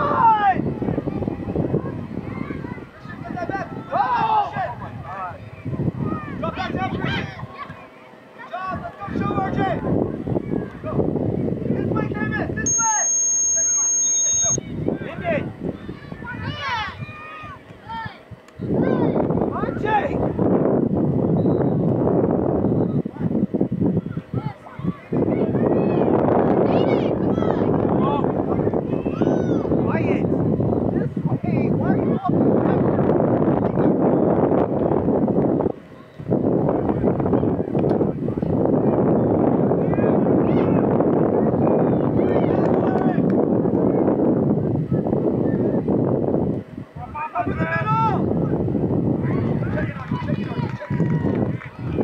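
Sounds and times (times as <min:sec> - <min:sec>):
wind buffeting microphone: 0:00.0 - 0:12.7, 0:14.4 - 0:52.0
distant voices shouting: 0:00.0 - 0:20.4, 0:22.6 - 0:33.1
steady high-pitched tone: 0:12.7 - 0:14.6.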